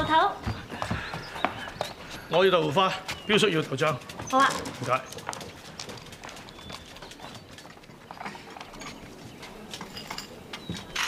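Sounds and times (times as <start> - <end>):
low street murmur: 0.0 - 11.0.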